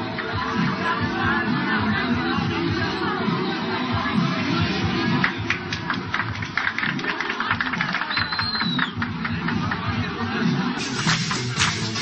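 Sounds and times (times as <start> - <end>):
dance music beat: 0.0 - 12.0
people clapping: 4.8 - 12.0.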